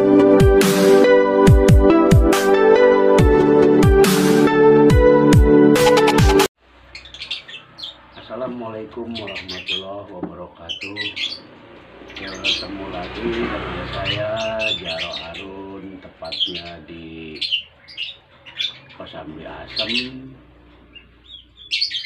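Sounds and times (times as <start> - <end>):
small birds chirping: 6.7 - 22.0
man talking: 8.2 - 11.3, 12.2 - 17.6, 18.9 - 20.5.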